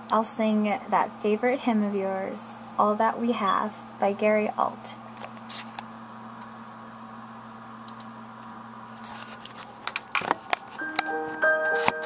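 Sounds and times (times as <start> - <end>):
keyboard hymn backing track: 10.8 - 12.0.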